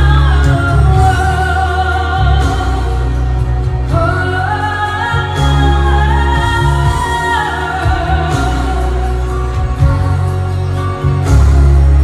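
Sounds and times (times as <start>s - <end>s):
musical accompaniment: 0.0s - 12.0s.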